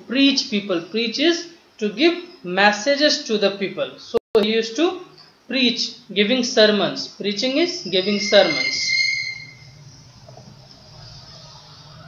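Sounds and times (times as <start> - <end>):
man speaking: 0.0 - 8.9.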